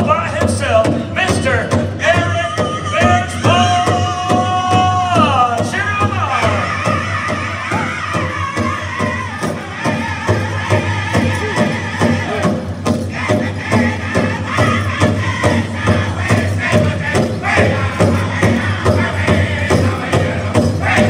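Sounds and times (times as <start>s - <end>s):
drum group singing: 0.0s - 21.0s
steady big drum beat: 0.0s - 21.0s.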